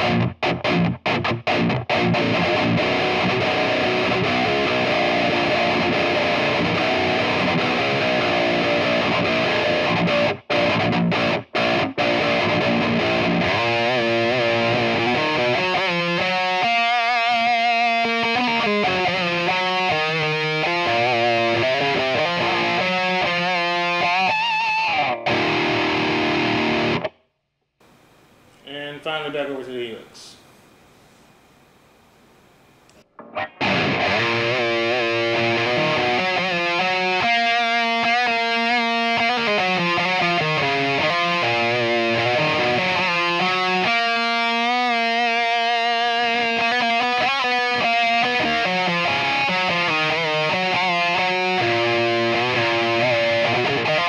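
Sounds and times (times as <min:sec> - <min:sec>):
distorted electric guitar: 0:00.0 - 0:27.2, 0:33.0 - 0:54.0.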